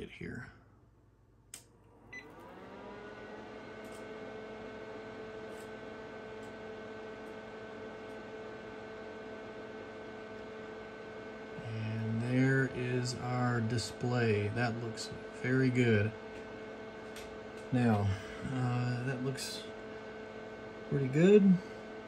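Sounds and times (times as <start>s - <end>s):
instrument fan hum: 1.5s - 22.0s.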